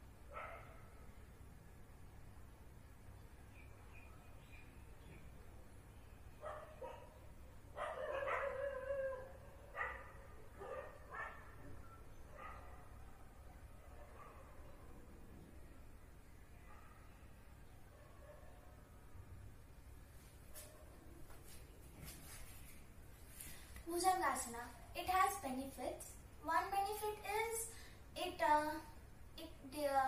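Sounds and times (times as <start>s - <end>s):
dog barking: 0.3s - 0.8s, 6.4s - 7.2s, 7.8s - 11.6s, 12.3s - 13.0s, 13.9s - 14.6s, 16.6s - 17.1s, 18.0s - 18.6s.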